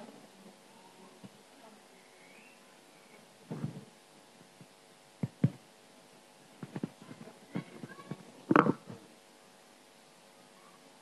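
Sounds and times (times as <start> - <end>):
microphone handling bumps: 3.5 - 3.9.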